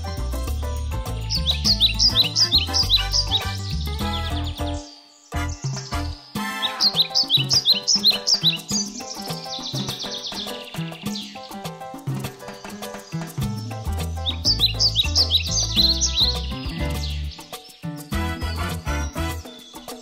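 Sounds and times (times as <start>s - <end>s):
upbeat children's music: 0.0s - 20.0s
quick bird-like chirps: 1.2s - 20.0s.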